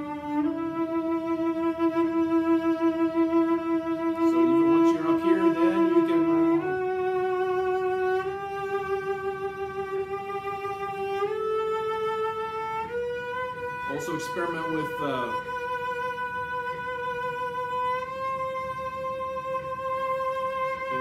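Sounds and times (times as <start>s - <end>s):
cello playing bowed scale: 0.0s - 21.0s
person speaking: 4.2s - 6.3s, 13.9s - 15.4s.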